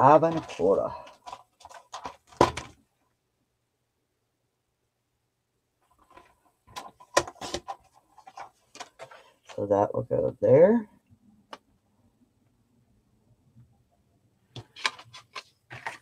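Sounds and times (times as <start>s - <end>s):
paper taps and rustles: 14.6s - 16.0s.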